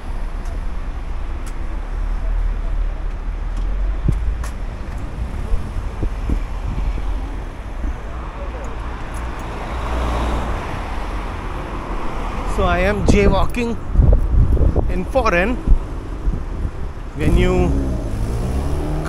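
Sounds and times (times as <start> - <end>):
cars driving by: 0.0 - 19.0.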